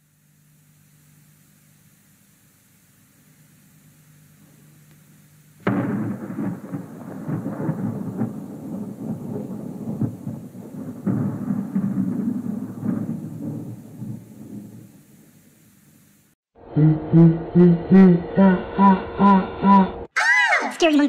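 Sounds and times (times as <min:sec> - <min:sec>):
sharp cracks: 0:05.6 - 0:14.8.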